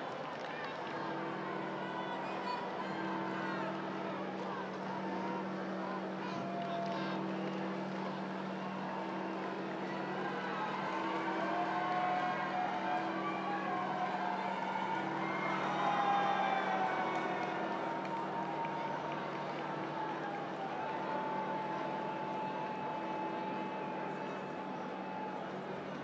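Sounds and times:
crowd calling out: 0:00.0 - 0:26.0.

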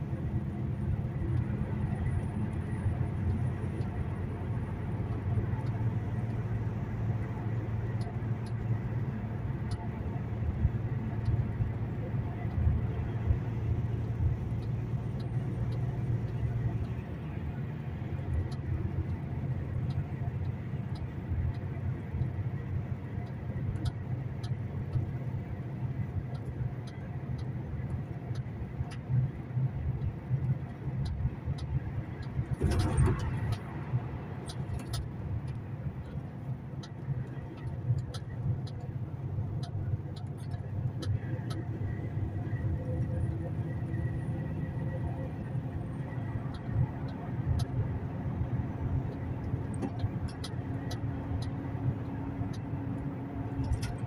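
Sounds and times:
road noise in tunnel: 0:00.0 - 0:54.0
truck engine drone: 0:00.0 - 0:54.0
faint clicks: 0:34.4 - 0:44.2, 0:46.0 - 0:54.0.

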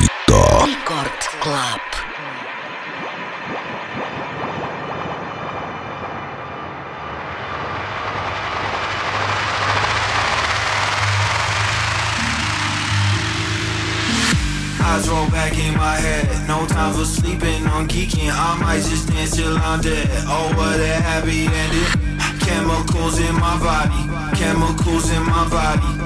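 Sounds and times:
low bass line: 0:00.0 - 0:00.8, 0:09.5 - 0:26.0
white-noise riser: 0:02.0 - 0:16.2.

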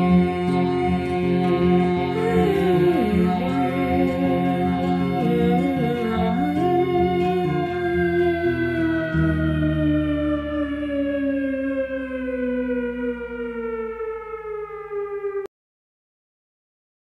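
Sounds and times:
electronic tone sliding down in pitch: 0:00.0 - 0:15.5
low held notes: 0:00.0 - 0:15.5.

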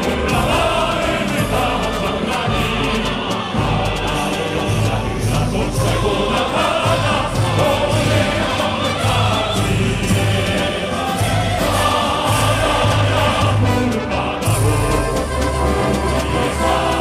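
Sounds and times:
many voices singing: 0:00.0 - 0:17.0.

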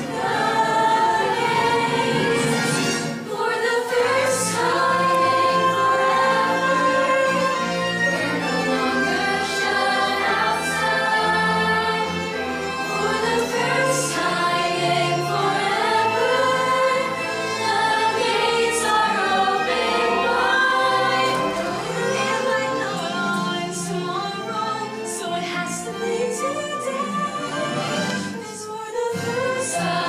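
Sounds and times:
chorus singing: 0:00.0 - 0:30.0
musical accompaniment: 0:00.0 - 0:30.0.

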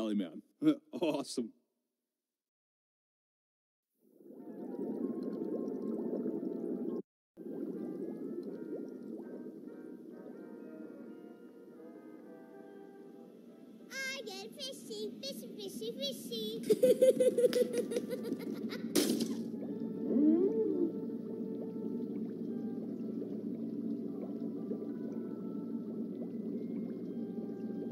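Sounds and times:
rising bubble blips: 0:04.2 - 0:11.5, 0:17.4 - 0:27.9
underwater bubbling and gurgling: 0:04.2 - 0:11.8, 0:17.3 - 0:27.9
low watery rumble: 0:04.2 - 0:12.4, 0:16.6 - 0:27.9
whale-like moaning call: 0:19.7 - 0:23.4.

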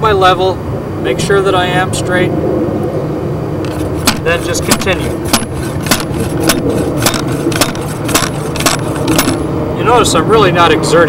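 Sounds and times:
hammer knocking on metal blade: 0:03.7 - 0:09.4.

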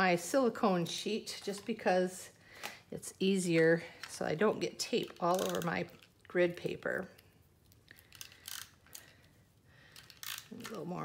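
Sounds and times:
adhesive tape rustling: 0:03.5 - 0:10.9.

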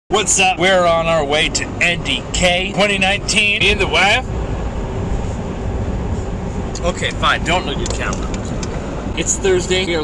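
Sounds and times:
car cabin road and engine noise: 0:00.1 - 0:10.0.

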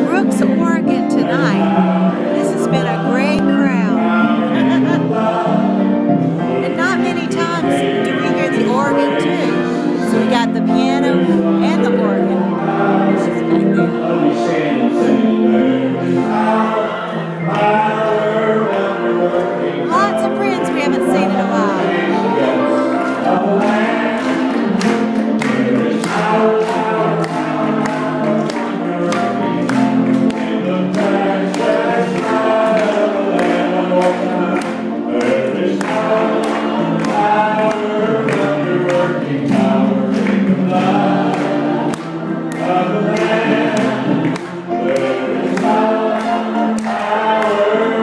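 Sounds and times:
congregation singing gospel song: 0:00.0 - 0:48.0
organ: 0:00.0 - 0:48.0
piano: 0:00.0 - 0:48.0.

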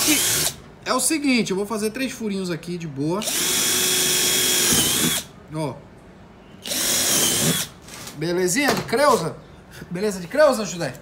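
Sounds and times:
cordless drill motor whine: 0:00.0 - 0:00.6, 0:03.2 - 0:05.3, 0:06.6 - 0:07.7.

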